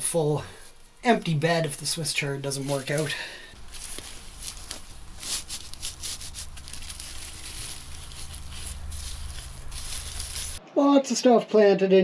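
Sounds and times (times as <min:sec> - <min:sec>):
soil and leaves rustling: 0:00.0 - 0:10.6.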